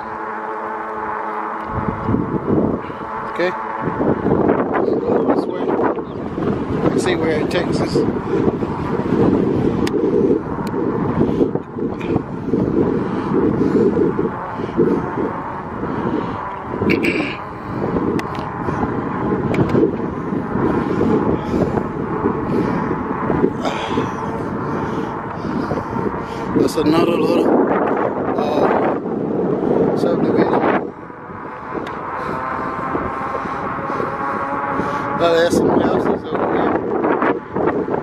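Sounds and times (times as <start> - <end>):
wind buffeting microphone: 0.0 - 38.0
person clearing throat: 16.9 - 17.4.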